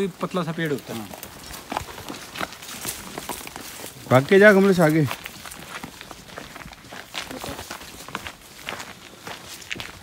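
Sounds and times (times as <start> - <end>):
footsteps on dry leaves: 0.0 - 10.0.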